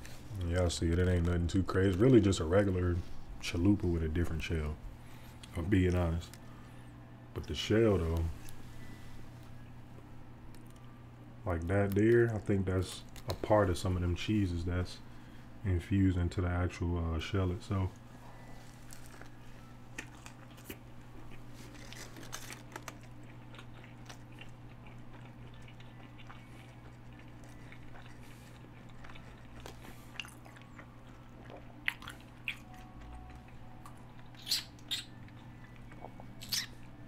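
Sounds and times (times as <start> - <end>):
man chewing food: 18.0 - 37.0
wet mouth clicks: 34.4 - 35.2, 36.4 - 36.8.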